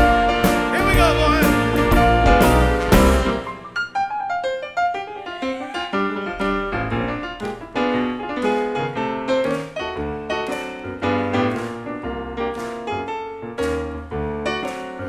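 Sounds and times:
electric piano playing: 0.0s - 15.0s.

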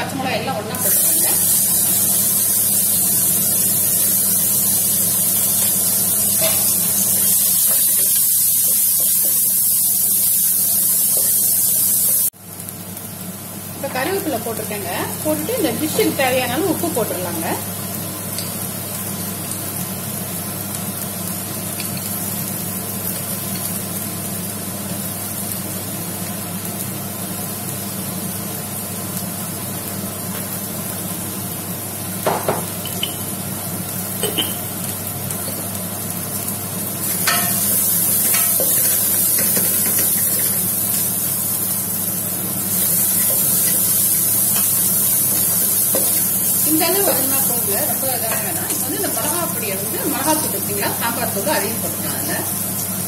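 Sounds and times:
vegetables sizzling in oil: 0.0s - 53.0s.

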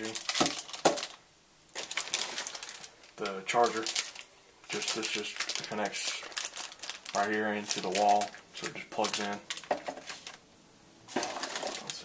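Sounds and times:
packaging rustling in cardboard box: 0.0s - 1.2s, 1.8s - 10.4s, 11.1s - 12.0s
plastic pack clicks and knock on desk: 0.2s - 1.2s, 8.6s - 10.2s.

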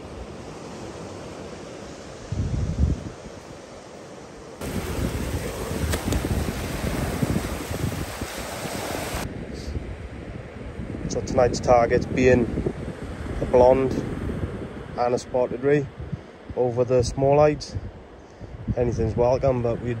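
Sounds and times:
wind buffet on microphone: 2.2s - 3.6s, 4.6s - 20.0s
waves washing over sand: 3.0s - 9.7s.

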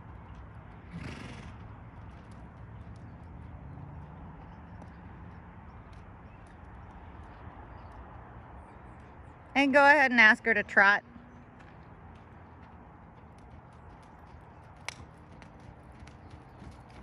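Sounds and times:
horse hooves on sand: 0.0s - 17.0s.

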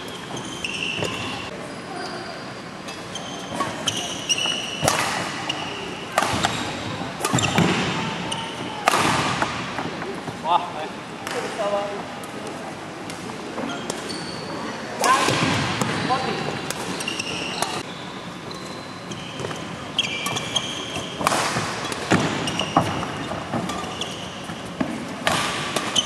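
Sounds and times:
shoes squeaking on court floor: 0.0s - 8.8s, 13.3s - 26.0s
racket hitting shuttlecock: 2.9s - 9.9s, 15.0s - 17.8s, 20.2s - 26.0s.

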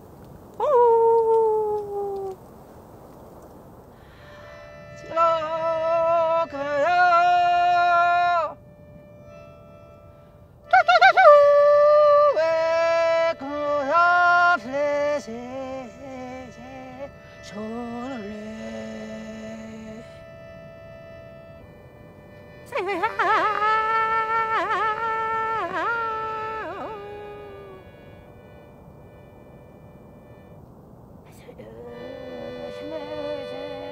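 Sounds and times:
person yodelling: 0.6s - 2.4s, 10.7s - 12.7s, 22.7s - 28.0s
button accordion: 12.5s - 30.6s, 31.8s - 33.9s.

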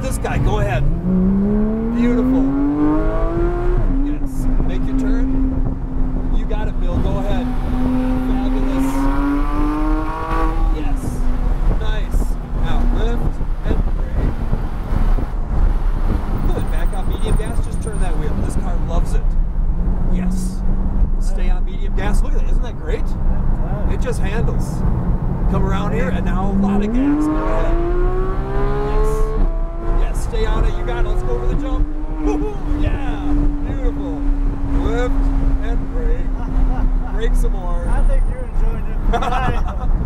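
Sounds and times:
car engine accelerating: 0.0s - 40.0s.

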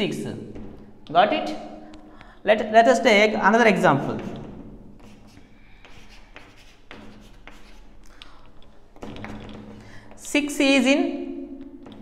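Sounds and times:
chalk tapping and scratching: 4.0s - 10.6s.

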